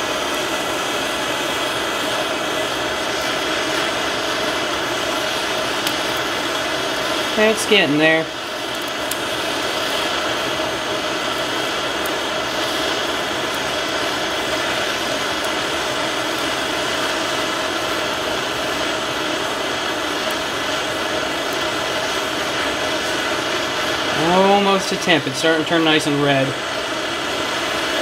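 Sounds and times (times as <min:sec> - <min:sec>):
gas torch hissing: 0:00.0 - 0:28.0.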